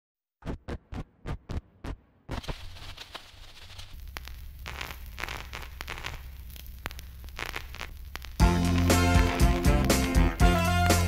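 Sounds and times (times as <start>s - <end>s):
vinyl crackle and hiss: 1.8s - 11.0s.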